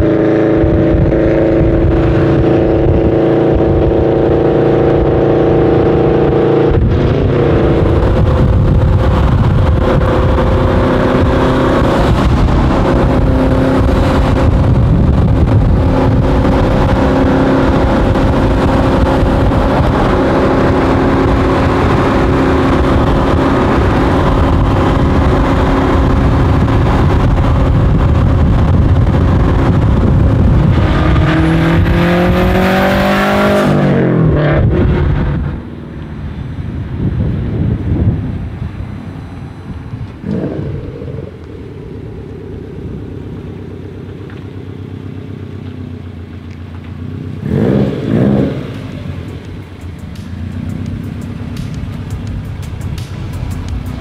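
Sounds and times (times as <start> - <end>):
car engine revving with turbo whistle: 0.0 - 54.0.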